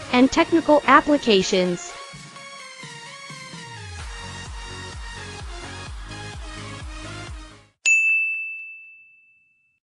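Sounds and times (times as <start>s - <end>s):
electronic music with steady beat: 0.1s - 7.6s
bright bell-like ding: 7.8s - 9.8s.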